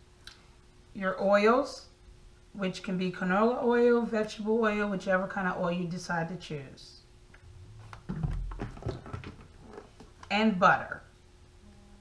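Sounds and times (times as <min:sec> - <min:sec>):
plastic tub knocks and clicks: 0:08.0 - 0:09.5.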